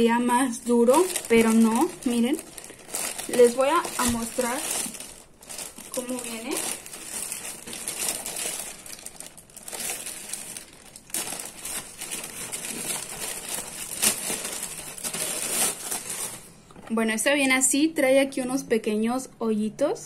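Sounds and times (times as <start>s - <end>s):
plastic bag crinkling: 0.0s - 16.8s.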